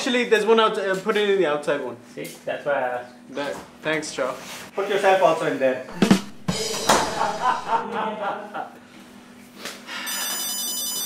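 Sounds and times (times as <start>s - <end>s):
phone ringtone trilling: 10.1s - 11.0s.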